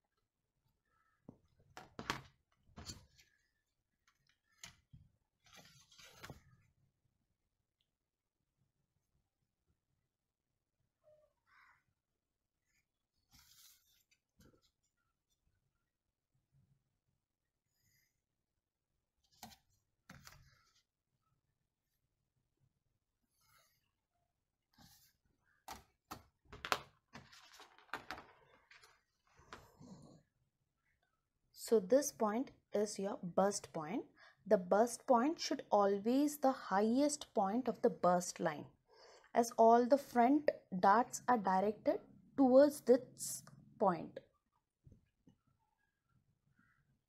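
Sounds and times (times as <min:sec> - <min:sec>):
paper rustle: 0:05.4 - 0:06.6, 0:13.2 - 0:14.8, 0:26.7 - 0:29.6.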